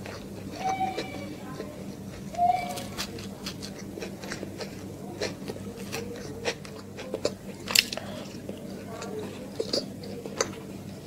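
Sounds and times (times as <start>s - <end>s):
close chewing with mouth clicks: 0.0s - 11.0s
faint steady hum: 0.0s - 11.0s.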